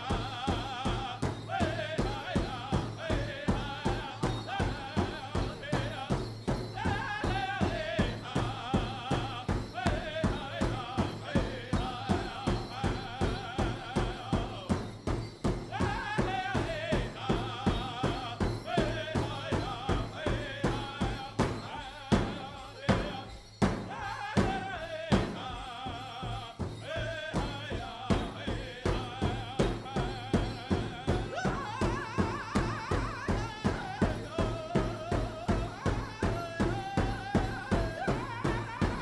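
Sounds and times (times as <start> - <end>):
big drum steady beat: 0.0 - 39.0
group singing high wavering song: 0.0 - 39.0.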